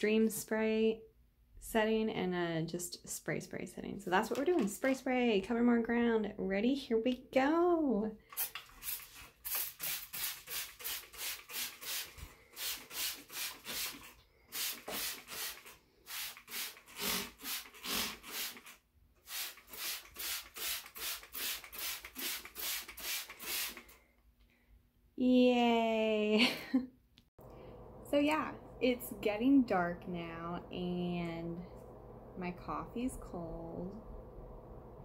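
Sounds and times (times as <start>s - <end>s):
spray bottle spritzing: 8.3s - 24.0s.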